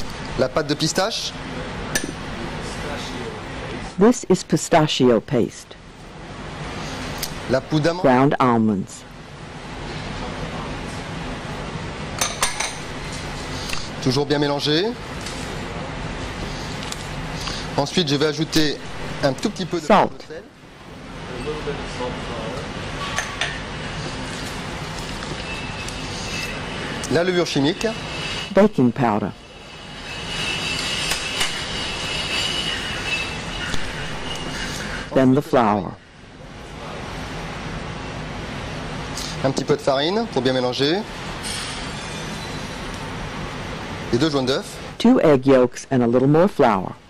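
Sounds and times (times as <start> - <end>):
thin high squeal: 25.4 - 28.7, 29.4 - 35.2, 41.4 - 42.9.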